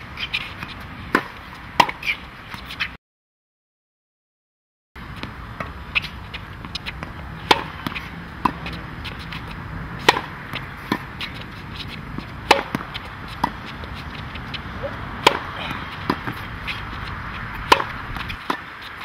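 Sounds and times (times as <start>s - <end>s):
racket hitting tennis ball: 0.2s - 2.9s, 5.2s - 19.0s
ball bouncing on hard court: 5.2s - 19.0s.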